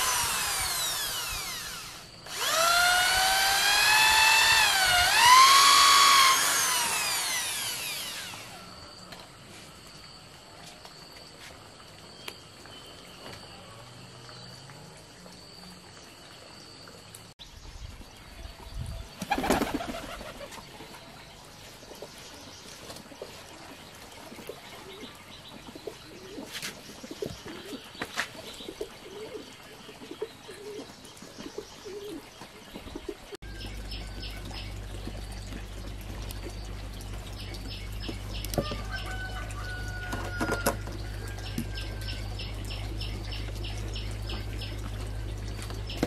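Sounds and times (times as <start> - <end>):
birds warbling: 24.4 - 46.0.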